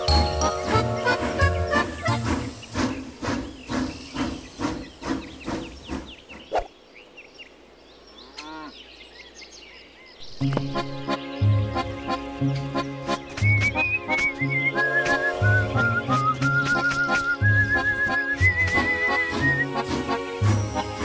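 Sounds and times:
cartoon toy train chugging: 0:00.0 - 0:06.2
cartoon background music: 0:10.4 - 0:21.0.

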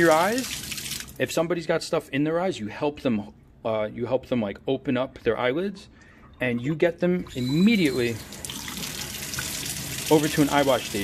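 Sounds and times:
water gushing into steel sink: 0:07.3 - 0:11.0.

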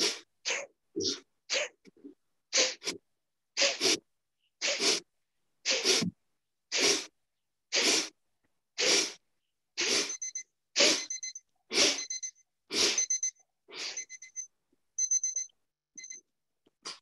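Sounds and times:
forceful nasal exhalations: 0:00.0 - 0:03.0, 0:03.6 - 0:08.2, 0:08.8 - 0:09.2, 0:09.8 - 0:10.2, 0:12.7 - 0:13.0.

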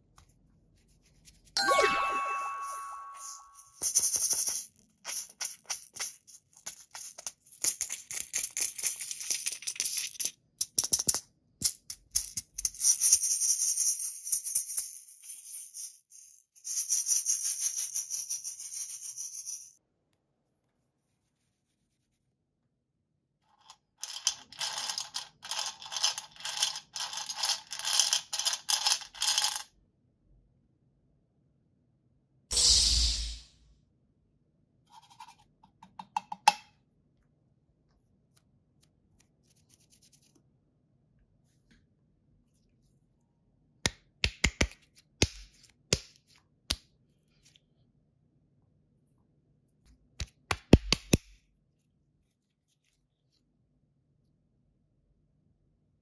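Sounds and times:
chime: 0:01.6 - 0:03.7.

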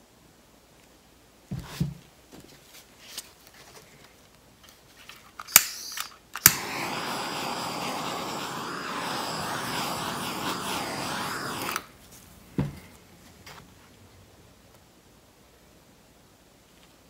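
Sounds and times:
torch igniter clicks: 0:05.5 - 0:11.9
torch flame hissing: 0:05.6 - 0:12.0.

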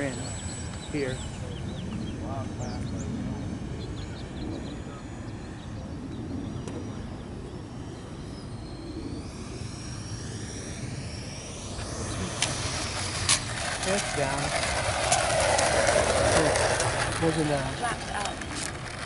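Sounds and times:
model jet fan whining: 0:00.0 - 0:19.0.

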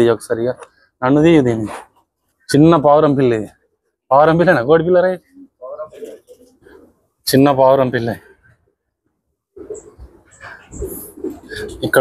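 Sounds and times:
man speaking: 0:00.0 - 0:01.9, 0:02.5 - 0:06.2, 0:07.2 - 0:08.4, 0:11.4 - 0:12.0
pigeons cooing: 0:05.2 - 0:07.0, 0:09.6 - 0:12.0.

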